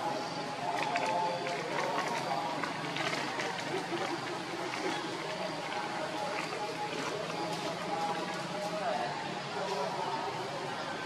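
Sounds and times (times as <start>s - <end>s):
distant voices: 0.0s - 11.0s
outdoor background noise: 0.0s - 11.0s.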